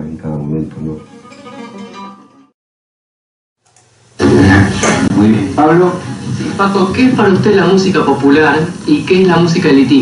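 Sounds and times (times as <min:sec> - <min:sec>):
flamenco guitar plucked notes: 0:00.8 - 0:02.5.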